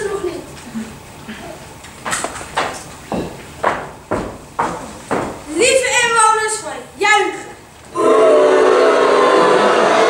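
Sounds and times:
footsteps on hollow wooden boards: 2.0s - 5.5s.

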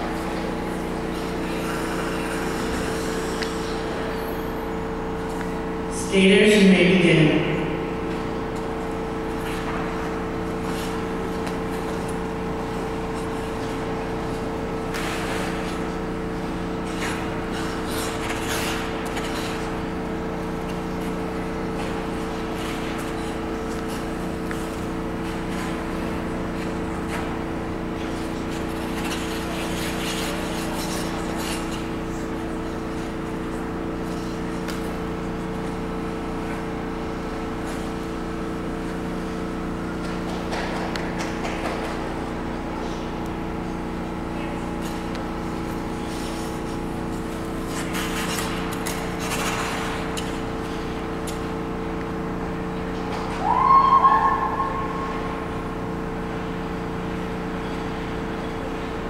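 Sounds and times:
skate blades swishing on ice: 0.0s - 4.1s, 8.6s - 51.8s
ice rink machinery hum: 0.0s - 59.0s
loud rising whoop: 53.4s - 55.4s.

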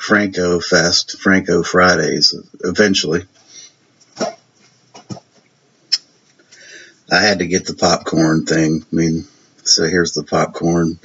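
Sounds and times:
disc cases handled: 4.0s - 5.4s.

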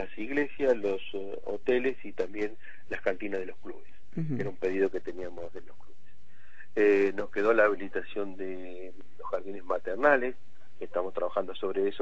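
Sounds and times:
man talking: 0.0s - 5.9s, 6.6s - 12.0s.

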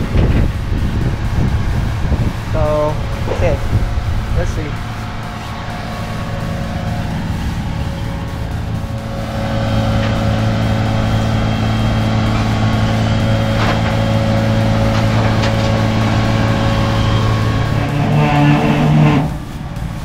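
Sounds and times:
hydraulics working: 0.0s - 20.0s
tow truck engine running: 0.0s - 20.0s.

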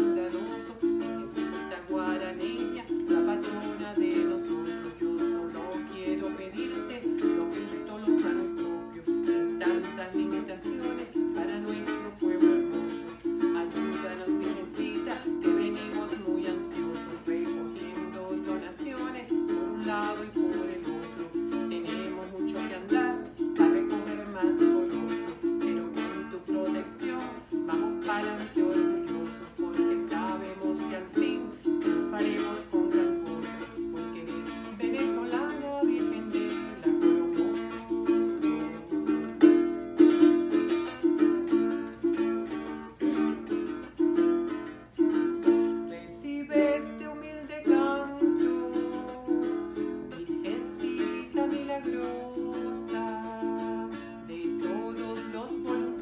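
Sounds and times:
small guitar strummed: 0.0s - 56.0s
woman singing: 0.0s - 56.0s.

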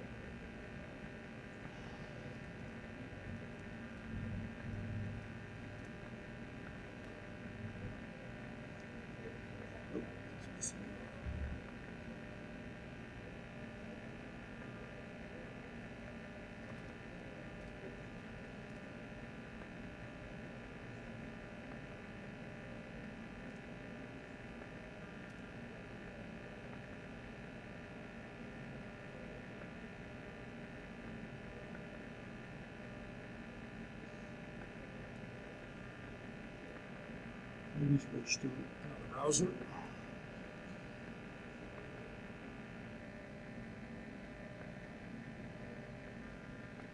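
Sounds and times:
electrical hum and hiss: 0.0s - 46.9s.

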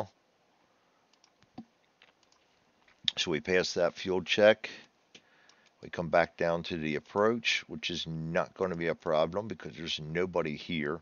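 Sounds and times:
computer mouse clicks: 1.1s - 3.1s, 5.1s - 5.8s.

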